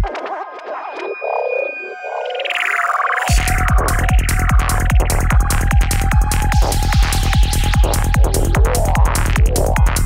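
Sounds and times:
squelchy bubbling synthesizer effects: 0.0 - 5.6
psytrance beat: 0.0 - 10.0.

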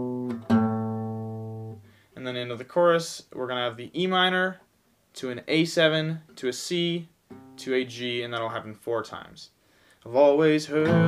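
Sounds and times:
acoustic guitar notes: 0.0 - 2.8, 6.2 - 8.5, 10.2 - 11.0.

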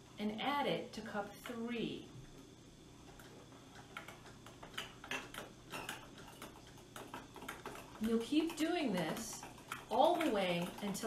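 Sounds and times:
metal spoons clicking on plastic cups: 3.2 - 11.0.

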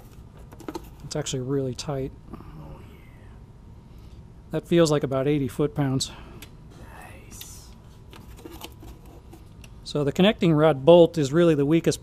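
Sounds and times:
faint whispering voice: 6.7 - 7.8.

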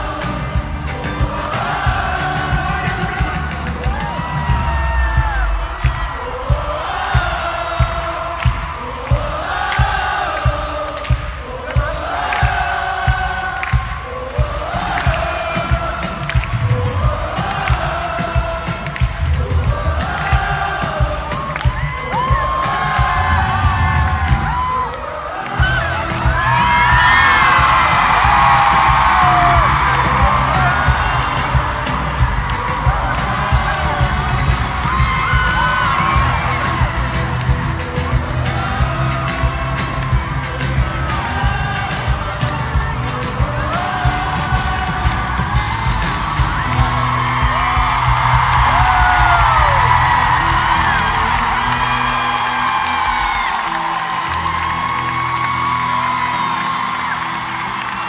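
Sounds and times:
drum beat: 0.0 - 55.3
lead vocal singing: 0.0 - 57.2
crowd cheering and singing along: 0.0 - 58.0
live pop music: 0.0 - 58.0.

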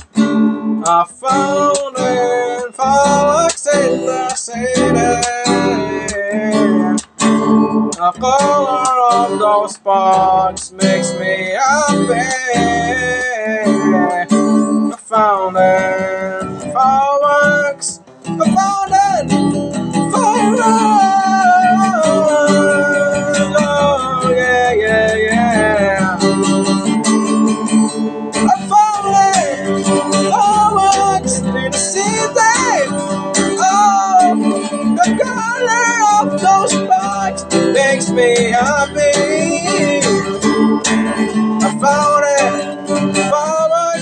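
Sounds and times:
acoustic guitar strumming: 0.0 - 44.0
person singing: 0.0 - 44.0.

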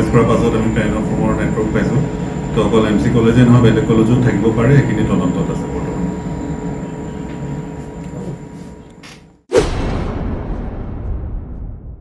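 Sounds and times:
low rumble and hiss: 0.0 - 7.7
faint whining tones: 0.0 - 9.0.

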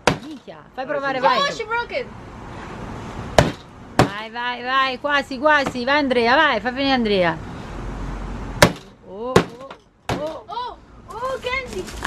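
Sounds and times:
hammer knocking on paper pinata: 0.0 - 0.4, 3.4 - 4.2, 9.4 - 10.4
faint background noise: 0.0 - 12.0.

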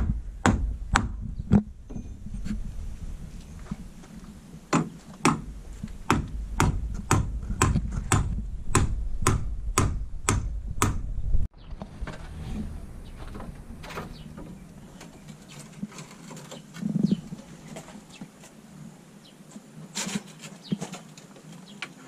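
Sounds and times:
hammer blows on timber: 0.0 - 2.1, 4.7 - 11.2.

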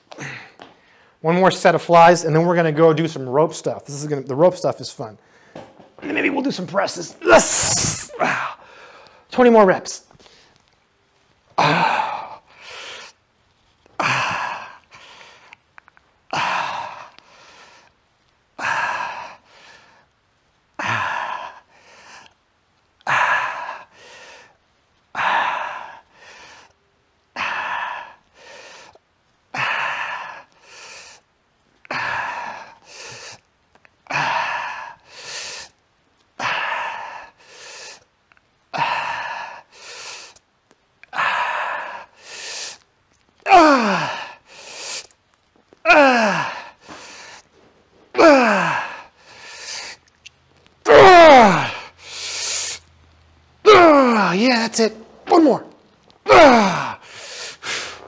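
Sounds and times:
man straining groans: 7.2 - 8.8, 11.6 - 12.5, 14.0 - 14.8, 16.3 - 17.2, 20.8 - 21.6, 34.1 - 34.9, 38.7 - 39.6, 43.4 - 45.1, 45.8 - 47.5, 48.1 - 50.0, 50.8 - 52.8, 53.6 - 58.0
man breathing forcefully: 7.4 - 9.3, 11.6 - 13.2, 23.1 - 24.6, 27.4 - 31.3, 31.9 - 33.5, 34.1 - 35.8, 36.4 - 38.1, 38.8 - 40.4, 41.1 - 42.8, 43.5 - 45.2, 45.9 - 50.1, 51.4 - 52.9, 53.7 - 58.0.

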